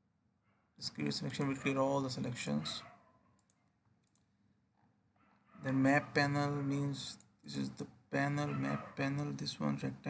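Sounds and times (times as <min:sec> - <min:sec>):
computer mouse clicks: 0:03.4 - 0:04.3.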